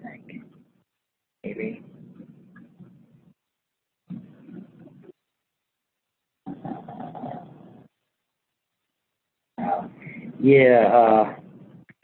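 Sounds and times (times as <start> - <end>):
low mumbled voice: 6.5 - 7.9, 9.6 - 11.4.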